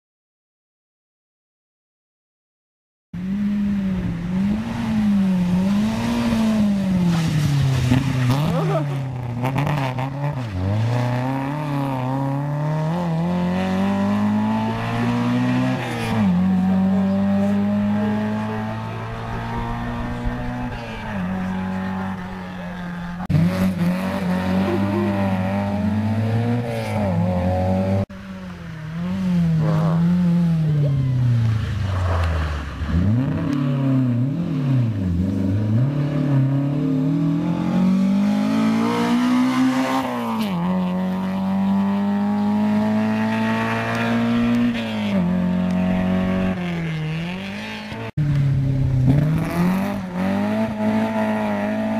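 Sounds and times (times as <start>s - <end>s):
rally car engine revving hard: 3.2s - 28.1s, 28.9s - 31.1s, 32.2s - 51.9s.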